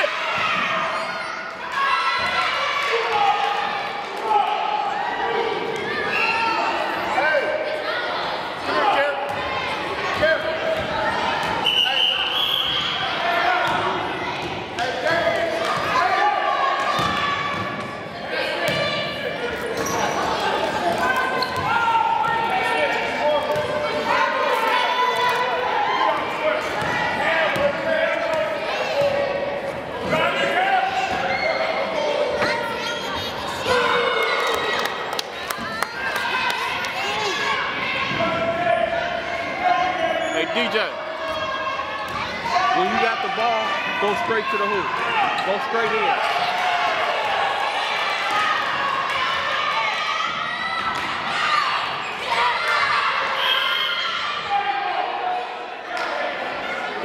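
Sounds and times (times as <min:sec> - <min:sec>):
voices ringing in a hall: 0:00.0 - 0:57.0.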